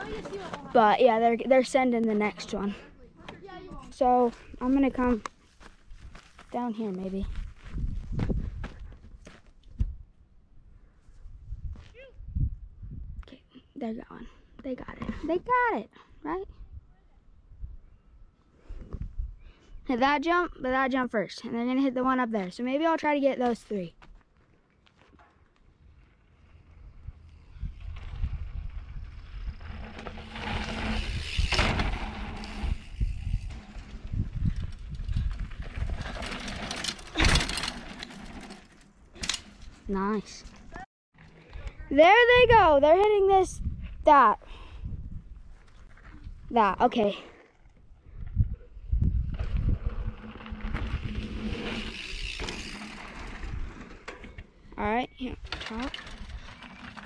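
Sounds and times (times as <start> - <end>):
footsteps on rocky dirt trail: 4.3 - 9.8
wind buffeting microphone: 7.2 - 10.1, 11.2 - 13.2, 26.7 - 37.5, 41.7 - 46.6, 47.9 - 53.9
bike rumbling over dirt trail: 25.7 - 41.3, 48.2 - 57.0.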